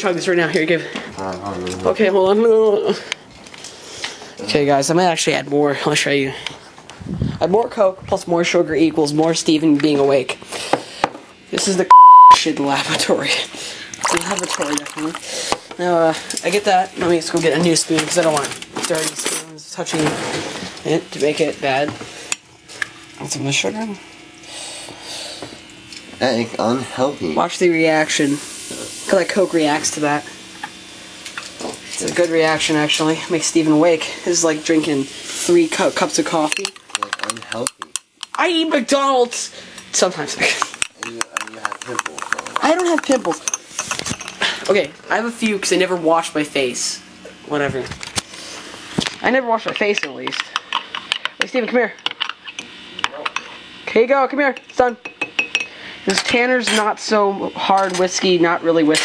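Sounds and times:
metal spoon clinking against glass: 55.0s - 55.7s.

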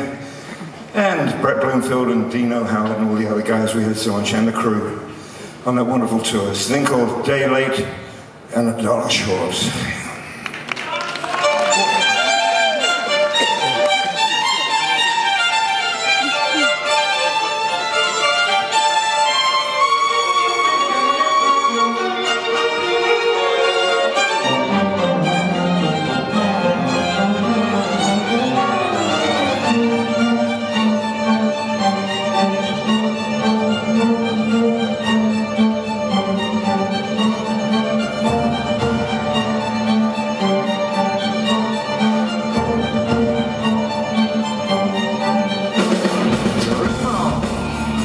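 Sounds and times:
orchestra with bowed strings: 11.4s - 48.0s
keyboard and band: 11.5s - 48.0s.

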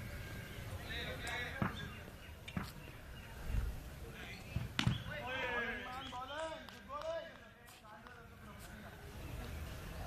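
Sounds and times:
cricket ball struck: 4.6s - 5.1s.

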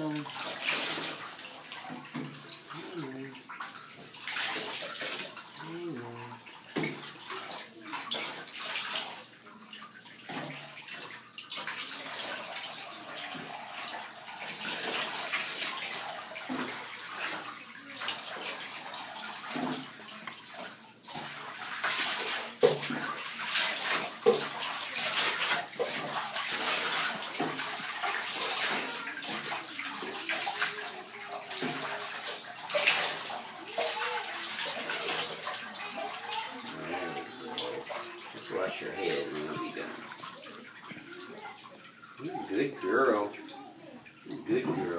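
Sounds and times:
bathwater splashing and sloshing: 0.0s - 44.9s
water pouring: 0.0s - 44.9s.

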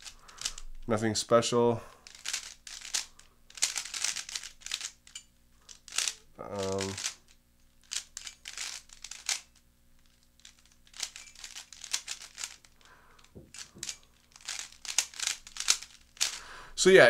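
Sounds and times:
puzzle cube plastic clicks: 0.0s - 0.9s, 2.0s - 16.4s.

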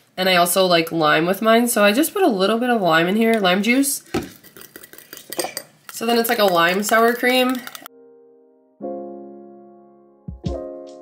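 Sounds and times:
metal utensil scraping glass bowl: 4.2s - 7.9s.

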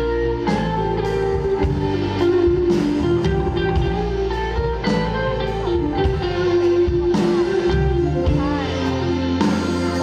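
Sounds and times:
bass and drums: 0.0s - 10.0s
electric guitar melody: 0.0s - 10.0s.

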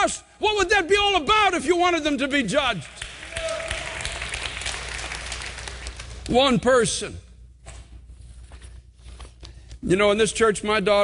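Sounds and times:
crowd applauding: 2.8s - 6.3s.

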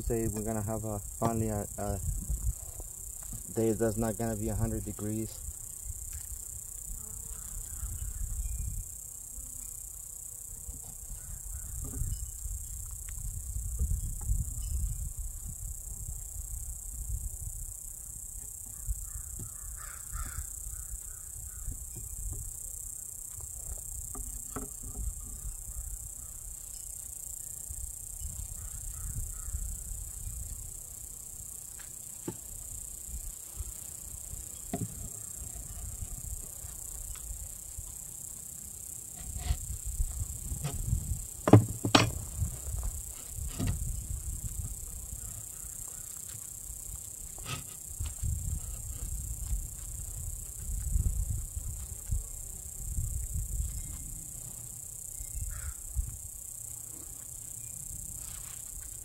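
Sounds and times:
wind rumbling on microphone: 0.0s - 9.0s, 11.1s - 17.9s, 27.8s - 30.8s, 39.2s - 45.3s, 47.9s - 54.2s, 55.3s - 56.4s
steady high hiss: 0.0s - 11.5s
metal tool scraping on wood: 39.1s - 39.7s, 41.5s - 42.2s, 47.4s - 47.8s.

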